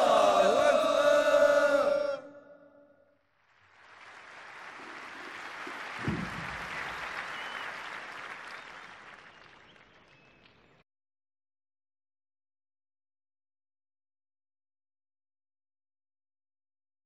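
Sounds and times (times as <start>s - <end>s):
large crowd applauding: 3.4s - 10.8s
low thump: 6.0s - 6.8s.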